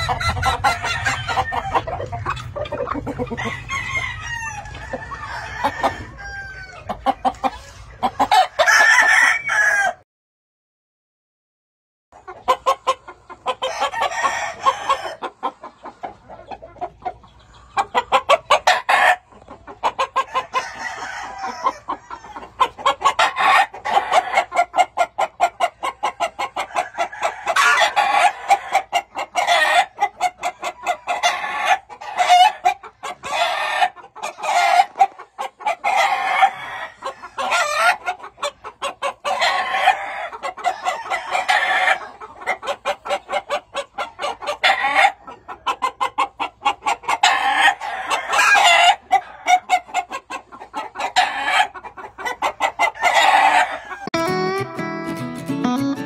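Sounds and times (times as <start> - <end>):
chickens clucking: 0.0 - 10.0, 12.2 - 56.0
roosters crowing: 0.0 - 10.0, 13.5 - 15.6, 18.1 - 50.2, 50.8 - 54.2.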